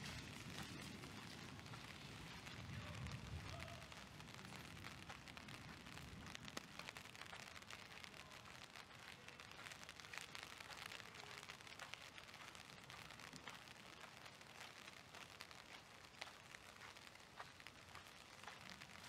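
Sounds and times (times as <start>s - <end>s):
rain hissing with drop ticks: 0.0s - 19.0s.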